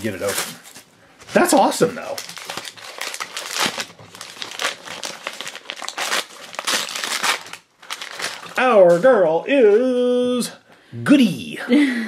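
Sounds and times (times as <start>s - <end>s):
plastic wrapper crinkling: 0.0s - 9.0s.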